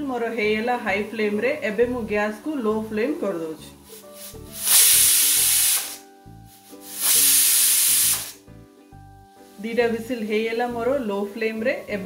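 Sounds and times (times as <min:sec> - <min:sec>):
pressure cooker hissing steam: 0:04.0 - 0:08.4.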